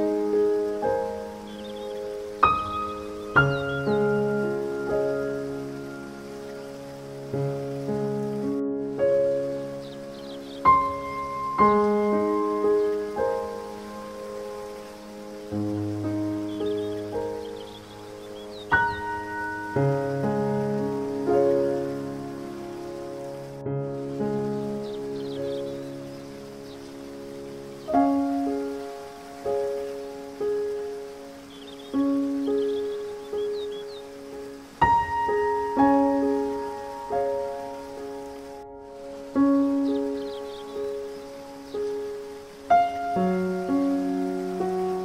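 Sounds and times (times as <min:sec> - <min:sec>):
faint rain-like water noise: 0:00.0 - 0:45.0
gentle solo piano: 0:00.0 - 0:45.0.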